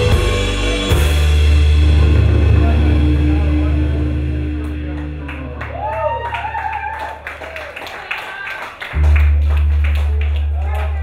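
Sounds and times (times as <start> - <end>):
loud held low bass note: 0.0 - 6.2
live rock band: 0.0 - 7.6.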